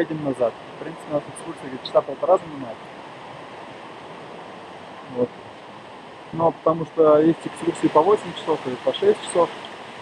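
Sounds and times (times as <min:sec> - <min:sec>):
river rushing over rocks: 0:00.0 - 0:10.0.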